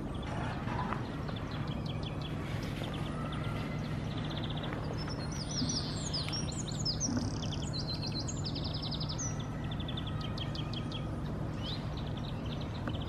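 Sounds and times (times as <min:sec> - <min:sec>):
songbirds singing and chirping: 0:00.0 - 0:13.0
steady low background noise: 0:00.0 - 0:13.0.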